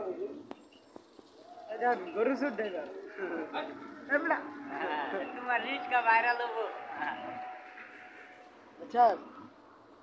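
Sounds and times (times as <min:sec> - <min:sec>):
people talking: 0:01.7 - 0:07.4.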